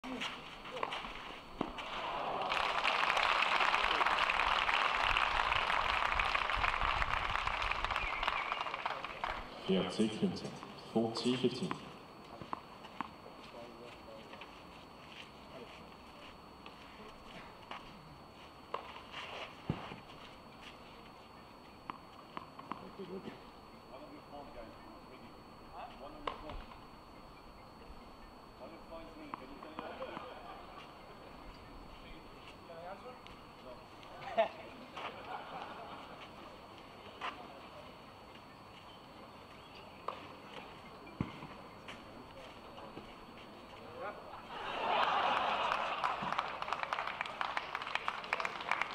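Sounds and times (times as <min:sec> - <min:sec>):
faint crowd murmur: 0:20.4 - 0:45.6.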